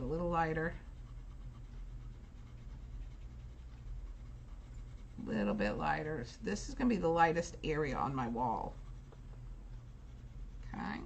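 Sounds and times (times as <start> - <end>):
low room hum: 0.0 - 11.0
pencil scratching on paper: 0.0 - 11.0.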